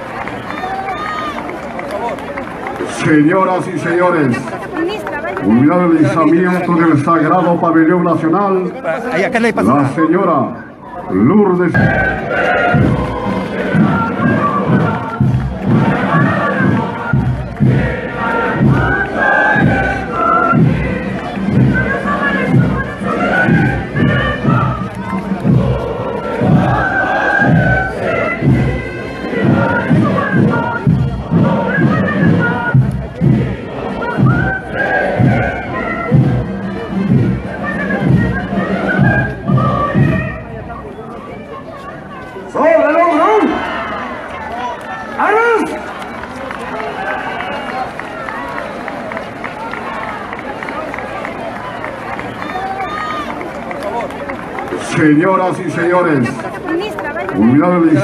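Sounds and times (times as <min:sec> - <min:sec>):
band music: 0:10.6 - 0:48.5
many voices singing together: 0:11.6 - 0:40.4.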